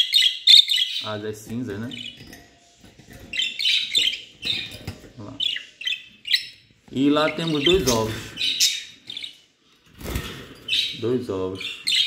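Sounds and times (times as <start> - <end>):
budgerigars chirping: 0.0 - 9.5, 10.6 - 12.0.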